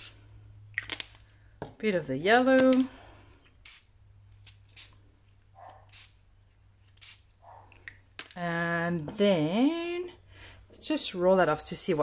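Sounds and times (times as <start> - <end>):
spray bottle hissing: 3.6 - 5.0, 5.9 - 6.2, 6.9 - 7.4.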